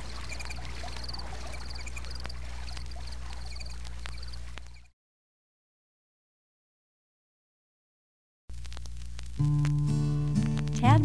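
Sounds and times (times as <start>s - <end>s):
faint clicks: 0.0s - 4.9s
insects and frogs chirping: 0.0s - 4.9s.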